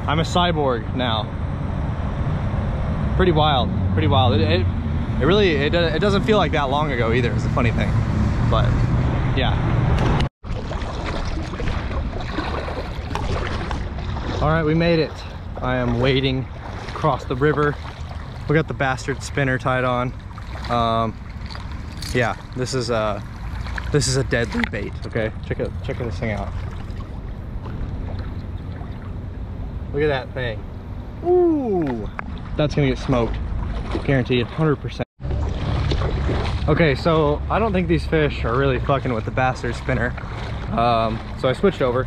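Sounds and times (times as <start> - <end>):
roadside traffic noise: 0.0 - 42.0
faint splashes: 10.4 - 29.5, 31.4 - 42.0
water sloshing around wading legs: 10.4 - 29.5, 31.7 - 42.0
person saying yeah: 31.2 - 32.1.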